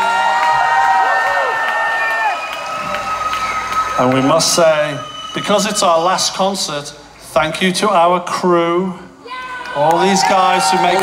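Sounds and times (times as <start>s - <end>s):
concert crowd cheering: 0.0s - 7.0s, 9.2s - 11.0s.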